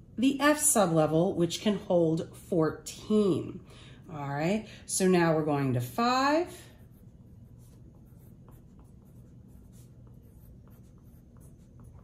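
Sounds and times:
low steady hum: 0.0s - 12.0s
pencil scratching on paper: 6.2s - 12.0s.

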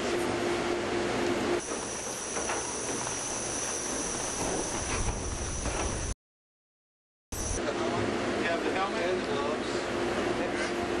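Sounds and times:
hiss with high whine: 1.6s - 6.1s, 7.4s - 7.6s.

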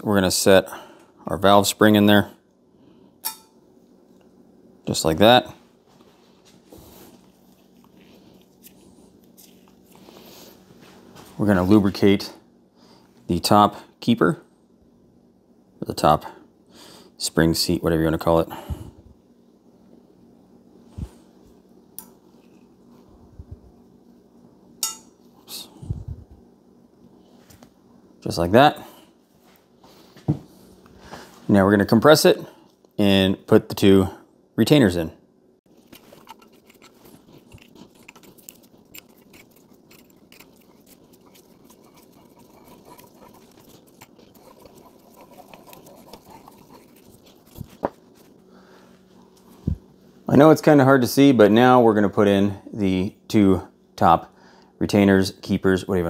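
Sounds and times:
small irregular ticks: 35.8s - 47.9s.

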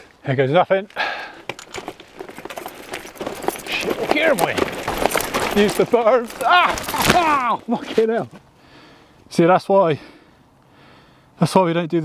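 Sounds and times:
bike tyres crunching over stones: 0.0s - 8.5s
bike rattling: 1.0s - 8.1s.

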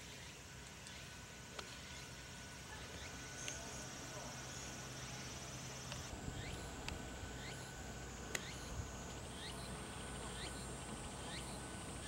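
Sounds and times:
outdoor ambience: 0.0s - 12.0s
bird chirping: 6.4s - 6.7s, 8.4s - 12.0s
sharp click: 8.3s - 8.6s.

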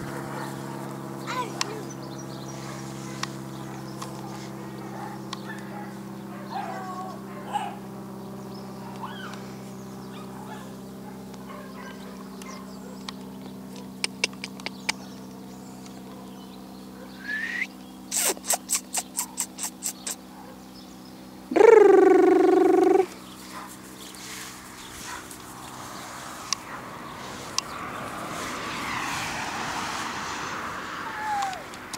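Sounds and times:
steady low hum: 0.0s - 28.7s
sharp chirps: 17.2s - 20.2s
loud drawn-out animal call: 17.2s - 20.3s.

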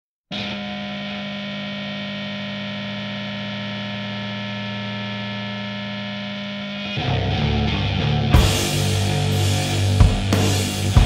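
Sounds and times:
distorted electric guitar chord: 0.3s - 11.0s.

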